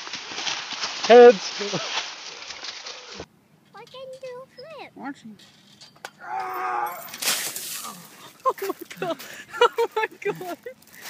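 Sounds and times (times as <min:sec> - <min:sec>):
dry leaves rustling and crunching: 0:00.0 - 0:03.3, 0:06.9 - 0:11.0
person laughing: 0:07.9 - 0:10.8.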